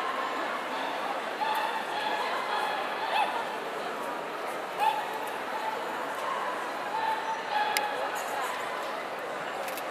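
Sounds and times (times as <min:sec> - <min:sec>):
murmur of a hall: 0:00.0 - 0:09.9.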